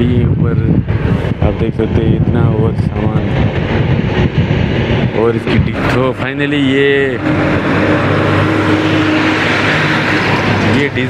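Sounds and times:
truck engine droning: 0.0s - 11.0s.

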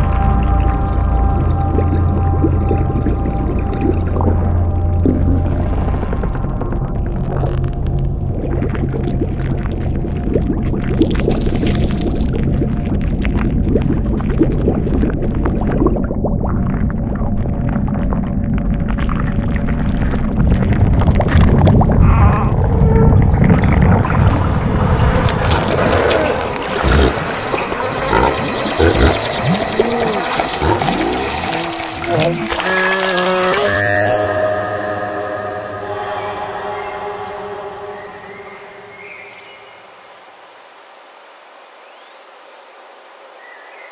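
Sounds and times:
low droning horror soundtrack: 0.0s - 14.2s, 16.7s - 40.1s
liquid gurgling effects: 0.0s - 39.6s.

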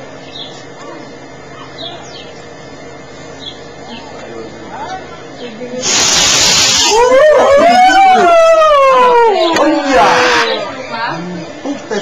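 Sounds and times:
rocket motor hissing: 5.8s - 7.1s
person whooping: 6.8s - 10.6s.

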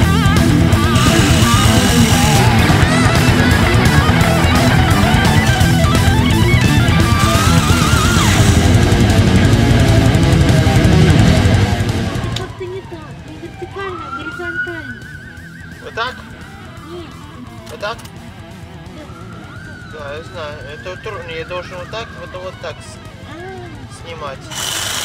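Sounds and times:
light background music: 0.0s - 25.0s
reciprocating saw cutting wood: 0.7s - 12.4s, 24.5s - 25.0s.

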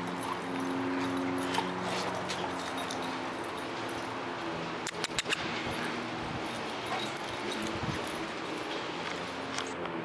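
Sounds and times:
paw and collar tag clicks: 4.8s - 8.2s.

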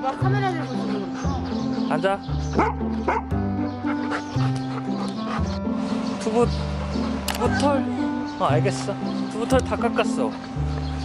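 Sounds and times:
background music with bass line: 0.0s - 11.0s
dog barking: 2.5s - 5.5s.

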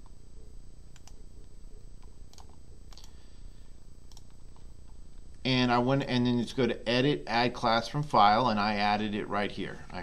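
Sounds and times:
faint low hum: 0.0s - 10.0s
computer mouse clicks: 0.9s - 3.2s, 4.1s - 4.7s.

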